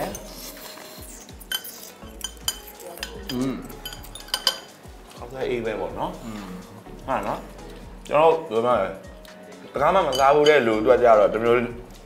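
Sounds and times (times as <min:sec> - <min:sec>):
chopsticks clinking on dishes: 0:01.4 - 0:05.2, 0:10.0 - 0:10.7.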